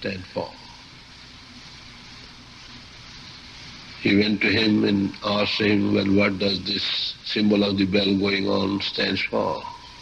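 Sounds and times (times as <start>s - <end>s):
recording hiss: 0.0s - 10.0s.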